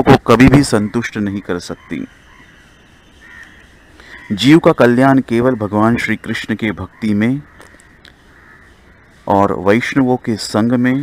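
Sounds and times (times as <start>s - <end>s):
faint bird calls: 0.6s - 11.0s.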